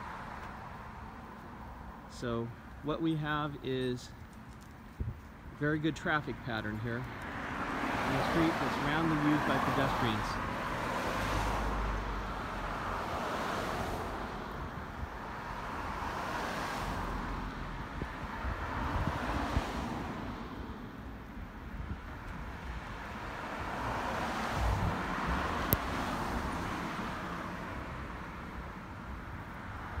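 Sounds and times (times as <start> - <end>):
cars passing: 0.0 - 30.0.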